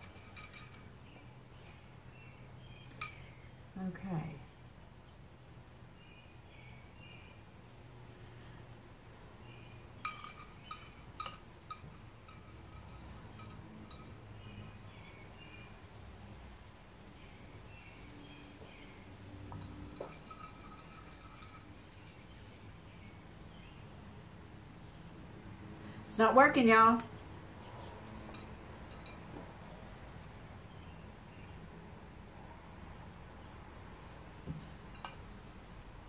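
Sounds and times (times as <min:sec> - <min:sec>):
distant bird calls: 0:00.0 - 0:03.8, 0:09.4 - 0:16.0, 0:17.1 - 0:25.2.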